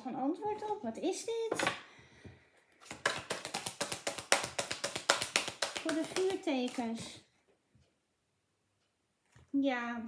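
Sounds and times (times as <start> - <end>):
cards being shuffled: 2.8 - 7.2.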